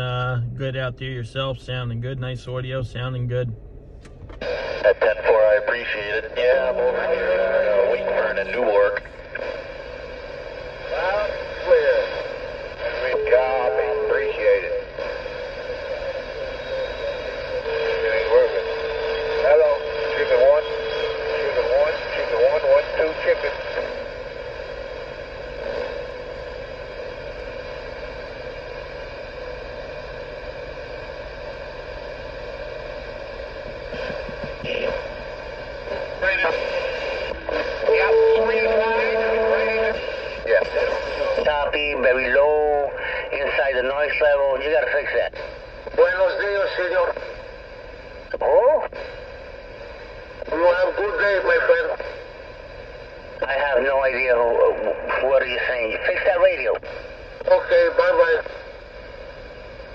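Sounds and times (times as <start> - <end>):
garbled radio voices: 0.0 - 3.6, 4.4 - 29.1, 33.3 - 59.9
radio static hiss: 0.0 - 59.9.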